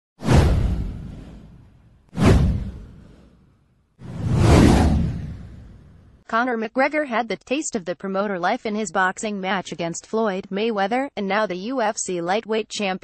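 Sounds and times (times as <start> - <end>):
whoosh sound effects: 0.2 - 6.1.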